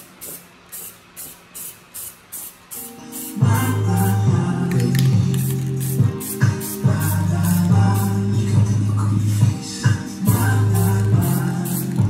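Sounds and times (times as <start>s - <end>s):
spray paint can hissing: 0.0s - 8.2s, 10.3s - 12.0s.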